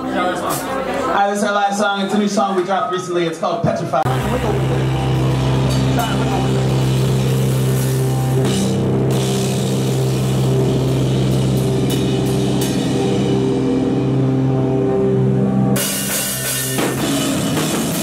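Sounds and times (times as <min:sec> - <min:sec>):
drum and cymbal hits: 0:04.0 - 0:14.7, 0:15.7 - 0:18.0
rock band droning note: 0:04.0 - 0:18.0.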